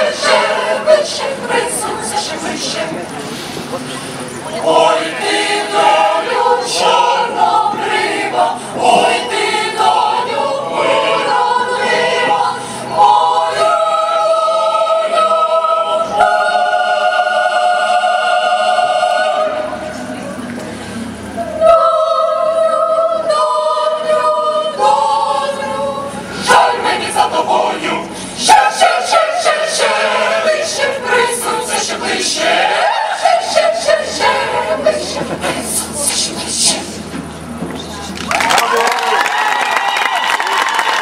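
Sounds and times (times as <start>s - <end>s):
mixed choir singing in harmony: 0.0s - 3.7s, 4.4s - 20.4s, 21.1s - 37.2s.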